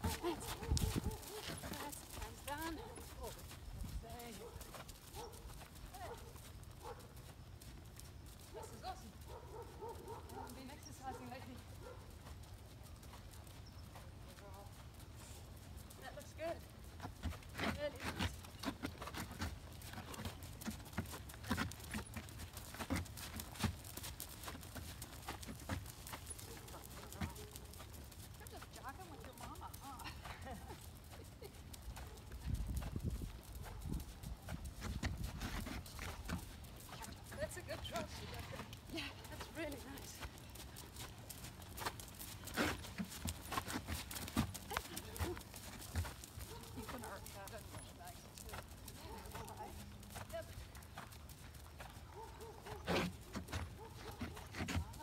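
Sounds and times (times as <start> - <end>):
horse hoofbeats on gravel: 0.0 - 55.0.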